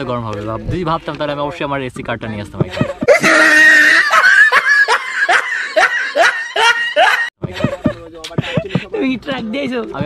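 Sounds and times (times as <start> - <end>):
high-pitched laughter: 2.7 - 7.9.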